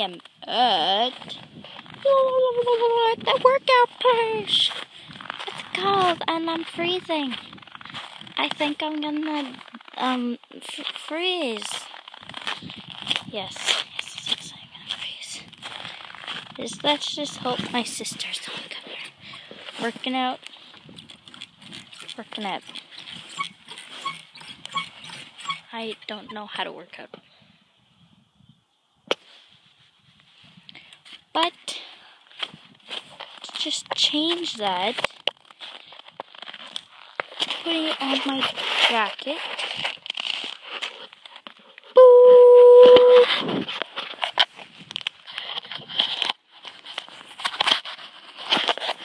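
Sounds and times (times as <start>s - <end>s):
metal pivots squeaking: 22.9s - 25.7s
phone rubbing against clothing: 22.9s - 25.7s
loud steady beep: 42.0s - 43.3s.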